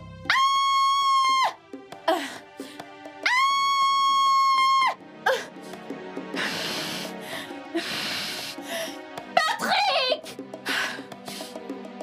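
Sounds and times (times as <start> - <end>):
woman screaming in pain: 0.3 - 2.3, 3.2 - 5.5
woman crying out: 0.3 - 2.4, 3.2 - 5.5
heavy rasping breaths: 5.3 - 9.2.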